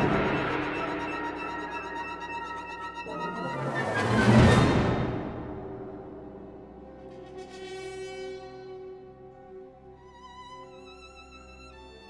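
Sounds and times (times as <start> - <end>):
loud orchestral crash: 0.0 - 6.5
symphony orchestra playing: 0.0 - 12.0.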